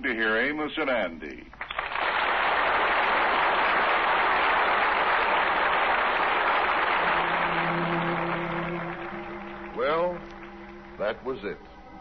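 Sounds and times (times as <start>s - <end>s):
audience applauding: 1.6s - 11.6s
held orchestral notes: 6.5s - 12.0s.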